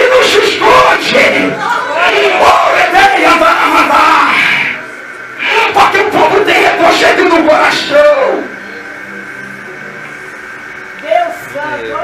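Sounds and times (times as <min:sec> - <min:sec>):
man preaching into microphone: 0:00.0 - 0:01.6, 0:02.3 - 0:04.7, 0:05.4 - 0:08.5
soft background music chords: 0:07.4 - 0:12.0.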